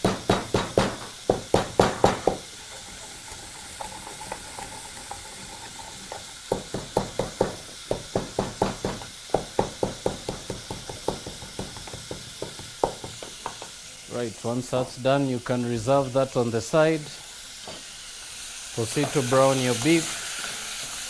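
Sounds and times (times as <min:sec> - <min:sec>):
wooden pestle pounding in mortar: 0:00.0 - 0:02.4, 0:06.5 - 0:13.6.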